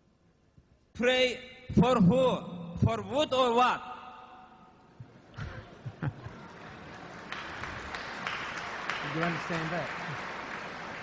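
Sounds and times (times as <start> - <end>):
audience applauding: 5.9 - 11.0.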